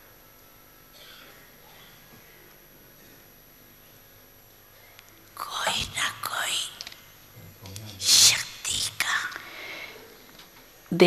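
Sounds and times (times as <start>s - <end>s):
soft breathy speech: 5.4s - 6.8s, 7.4s - 10.1s.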